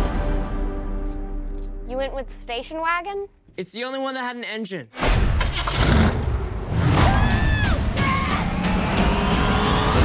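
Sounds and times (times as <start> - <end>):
trailer music with sharp hits: 5.0 - 10.0
car engine revving hard: 8.4 - 10.0.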